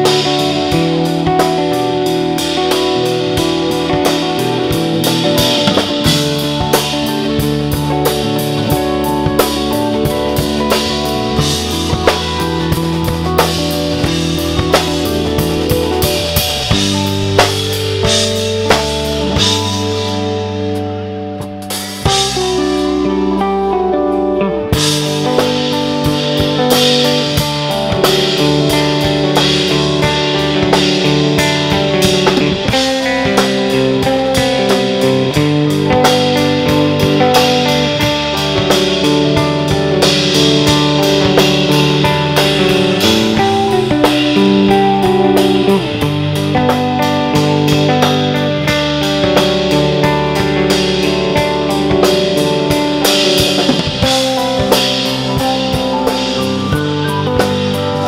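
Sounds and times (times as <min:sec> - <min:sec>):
bass guitar: 0:00.0 - 0:58.0
drum kit: 0:00.0 - 0:58.0
electric guitar: 0:00.0 - 0:58.0
keyboard chords: 0:00.0 - 0:58.0.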